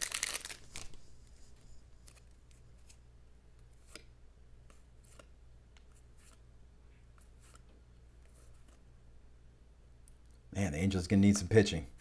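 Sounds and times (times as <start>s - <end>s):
foil wrapper tearing and crinkling: 0.0s - 0.9s
cards handled ticking: 0.0s - 1.0s.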